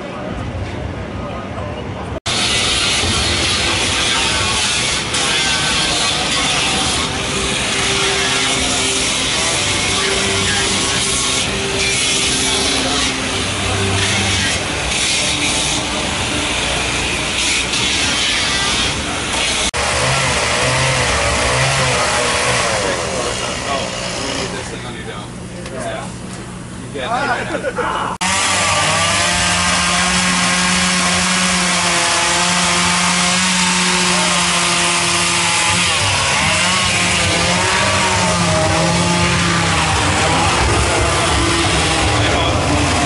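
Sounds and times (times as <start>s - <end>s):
power tool grinding wood: 2.3s - 24.8s, 28.2s - 43.0s.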